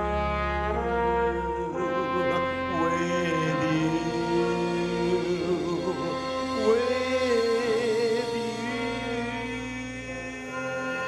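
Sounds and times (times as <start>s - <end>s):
live band sustained chords: 0.0s - 11.0s.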